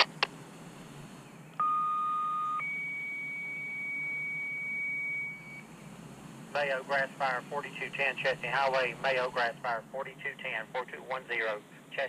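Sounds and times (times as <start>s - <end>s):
radio clicks: 0.0s - 0.4s.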